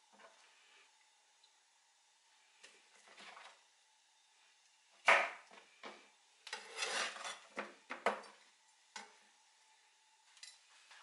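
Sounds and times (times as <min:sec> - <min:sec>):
fruit pieces scraping across board: 0:06.5 - 0:07.4.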